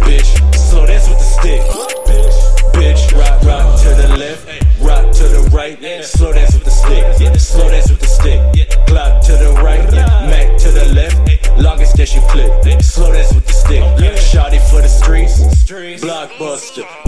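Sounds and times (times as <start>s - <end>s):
rapped vocals: 0.0s - 17.0s
trap beat with sub-bass: 0.0s - 17.0s.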